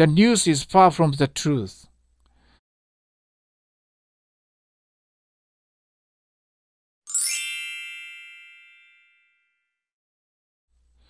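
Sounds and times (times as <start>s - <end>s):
bright chime: 7.1s - 9.6s.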